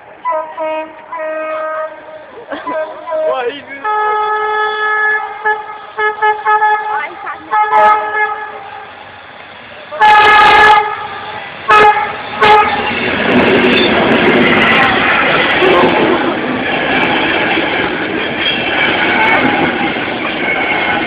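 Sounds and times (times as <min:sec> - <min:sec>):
moving train rumble: 0:00.0 - 0:21.0
train horn toots: 0:00.2 - 0:08.8, 0:09.9 - 0:13.0.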